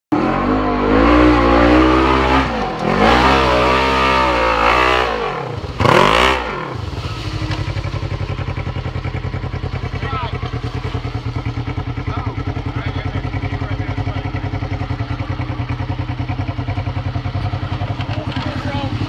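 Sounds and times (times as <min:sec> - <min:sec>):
engine revving and idling: 0:00.1 - 0:19.0.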